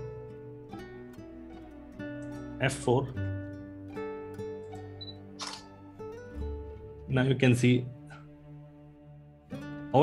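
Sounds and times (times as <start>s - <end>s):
soft background music: 0.0s - 10.0s
camera shutter click: 5.0s - 5.7s.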